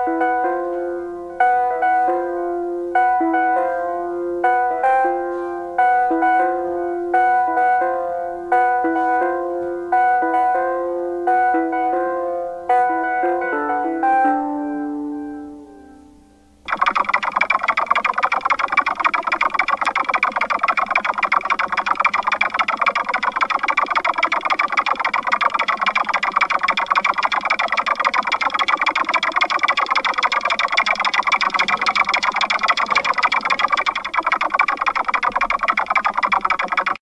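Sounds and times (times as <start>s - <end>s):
distorted noise drone: 16.6s - 37.0s
fast buzzing flutter: 16.7s - 37.0s.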